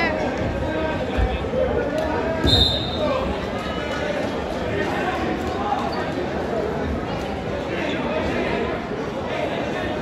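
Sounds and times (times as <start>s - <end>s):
crowd chatter in echoing gym: 0.0s - 10.0s.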